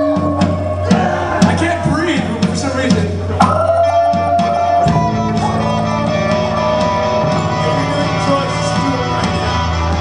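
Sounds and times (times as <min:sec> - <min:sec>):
bass guitar low line: 0:00.0 - 0:10.0
electric guitar: 0:00.0 - 0:10.0.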